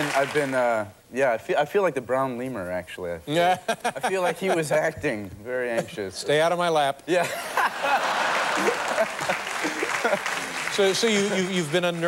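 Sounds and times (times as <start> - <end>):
audience applauding: 0.0 - 0.6, 7.8 - 12.0
people laughing: 3.4 - 4.9, 7.1 - 12.0.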